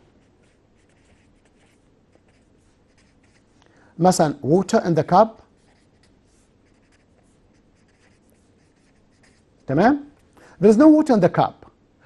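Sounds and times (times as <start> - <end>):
marker scratching on paper: 0.0 - 3.5, 5.6 - 9.8.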